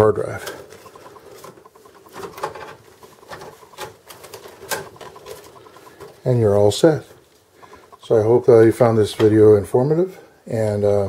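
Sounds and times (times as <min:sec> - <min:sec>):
cable rustling: 0:00.0 - 0:09.4.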